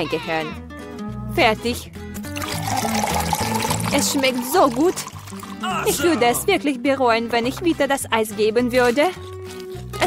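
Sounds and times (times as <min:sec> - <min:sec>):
background music: 0:00.0 - 0:10.0
liquid pouring: 0:02.2 - 0:05.7.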